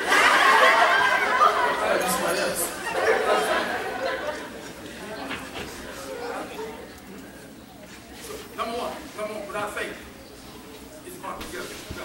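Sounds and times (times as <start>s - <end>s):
several voices talking: 1.1s - 12.0s.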